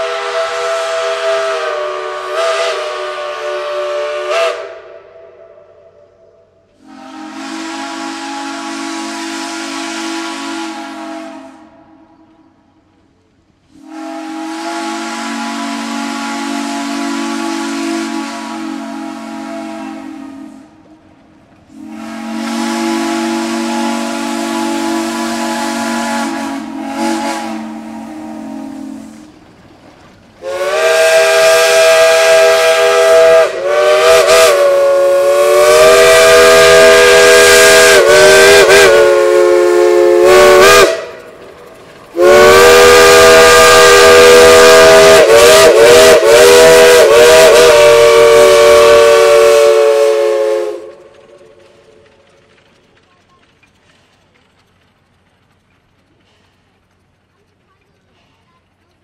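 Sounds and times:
steam locomotive whistle blasts: 0.0s - 6.2s, 6.8s - 12.3s, 13.7s - 20.9s, 21.7s - 29.3s, 30.4s - 41.3s, 42.1s - 51.6s.

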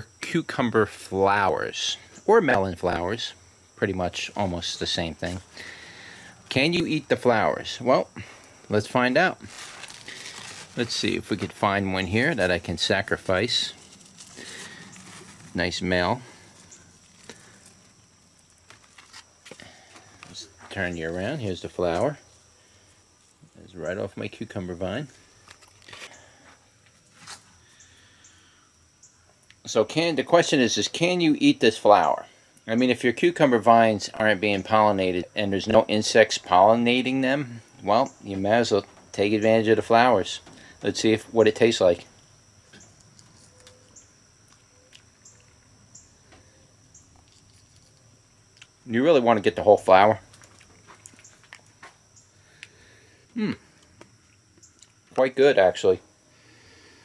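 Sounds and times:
faint rustles: 9.4s - 11.6s, 13.3s - 20.8s
soft chewing: 43.0s - 45.7s, 47.1s - 48.8s, 50.2s - 51.9s
person humming hmm: 53.3s - 53.7s.

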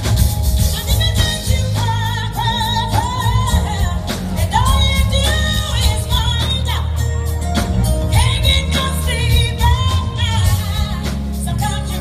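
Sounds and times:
heavy bass line: 0.0s - 12.0s
live jazz band: 0.0s - 12.0s
woman singing with vibrato: 0.6s - 12.0s.

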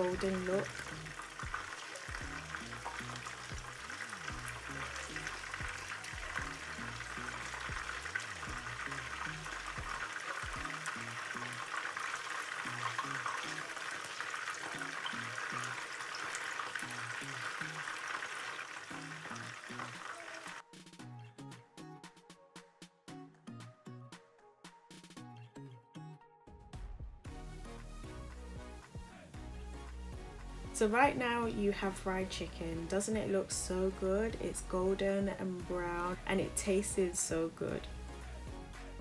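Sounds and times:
chicken deep-frying in oil: 0.0s - 20.6s, 30.8s - 37.9s.

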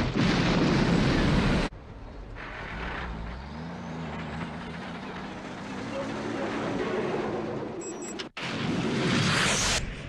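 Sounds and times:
diesel truck engine under load: 1.8s - 8.4s.

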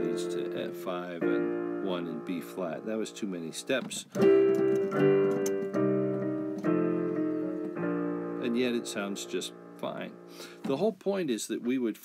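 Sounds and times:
piano chords: 0.0s - 10.6s.

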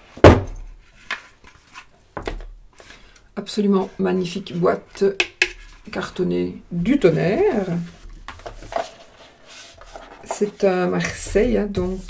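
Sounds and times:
cardboard box thunk on table: 0.2s - 0.6s.

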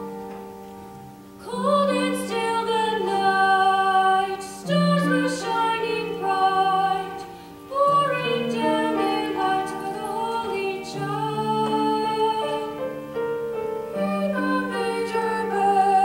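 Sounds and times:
woman singing: 1.4s - 13.0s, 13.9s - 16.0s.

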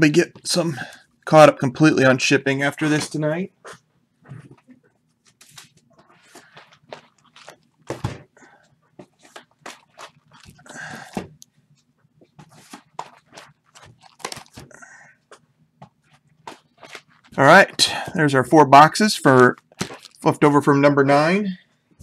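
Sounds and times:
cardboard boxes knocking and rustling: 7.9s - 8.3s.

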